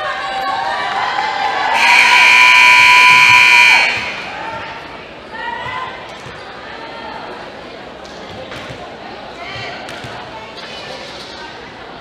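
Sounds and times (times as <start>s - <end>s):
scoreboard buzzer blast: 1.8s - 4.4s.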